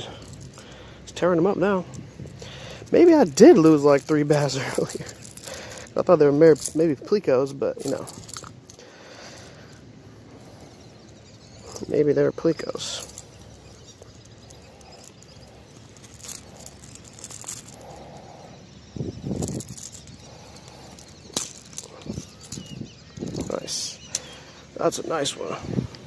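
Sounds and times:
faint outdoor background: 0.0 - 26.0
fishing rod and reel handling: 0.1 - 0.8, 1.5 - 25.2.

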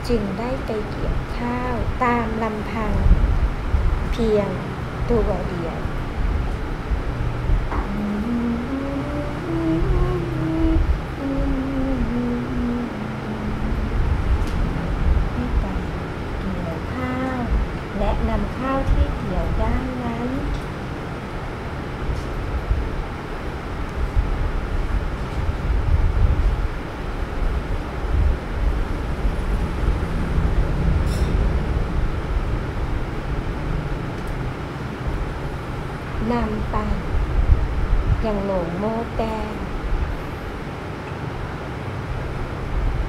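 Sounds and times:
low rumble: 0.7 - 40.7
woman humming a slow tune: 7.7 - 14.4, 15.4 - 20.6.

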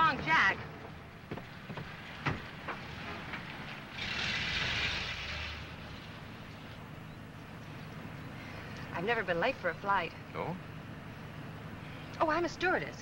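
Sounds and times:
low engine rumble: 0.0 - 13.0.

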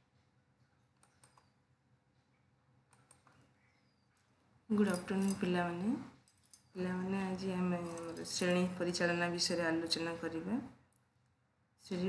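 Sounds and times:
computer mouse clicks: 0.9 - 1.6, 2.9 - 3.4.

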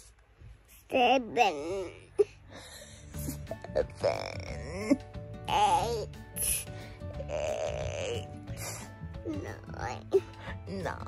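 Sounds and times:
toddler high-pitched vocal sound: 0.9 - 2.3, 3.7 - 6.6, 7.2 - 10.3
background music: 0.9 - 11.0.

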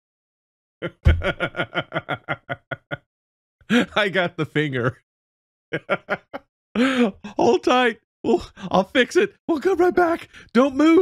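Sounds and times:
man laughing: 0.8 - 3.1, 3.7 - 4.2, 5.8 - 7.5.

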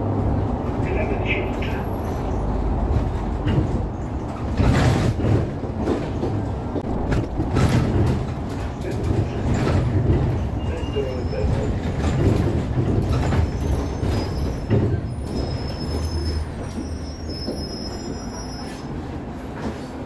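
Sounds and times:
bus engine and road rumble: 0.0 - 20.0
bodywork rattles and knocks: 2.2 - 18.2.

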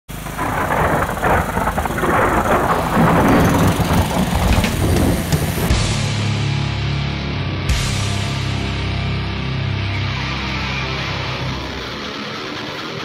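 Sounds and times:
angle grinder running: 0.1 - 5.7.

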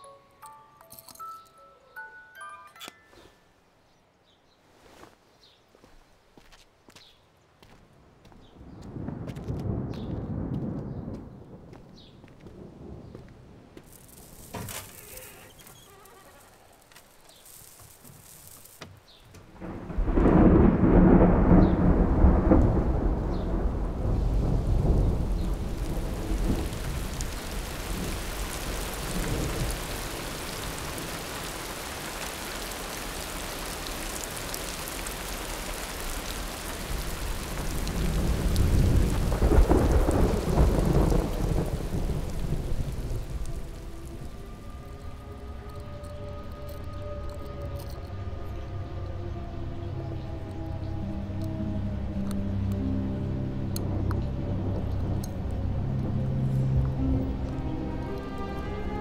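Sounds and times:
thunder rumble: 8.5 - 15.1, 19.5 - 59.0
rain hissing: 12.5 - 59.0.

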